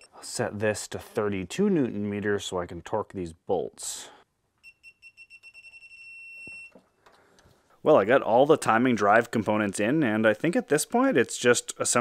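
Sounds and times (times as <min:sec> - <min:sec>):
torque wrench beeping: 0:04.6 - 0:06.8.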